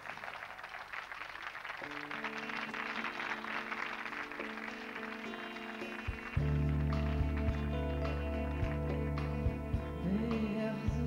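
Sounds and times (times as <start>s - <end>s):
held keyboard chords: 1.8s - 11.0s
band playing with bass: 2.2s - 11.0s.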